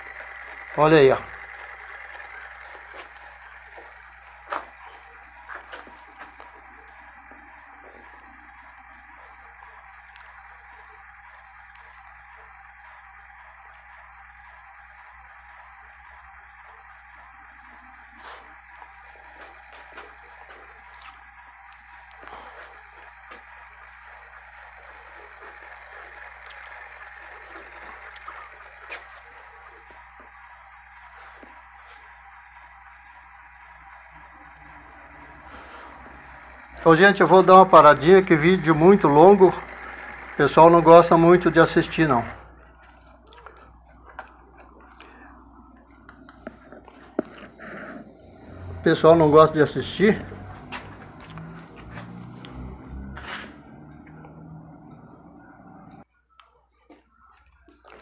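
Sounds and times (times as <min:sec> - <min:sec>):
magnet rotor whirring: 0:00.0 - 0:56.1.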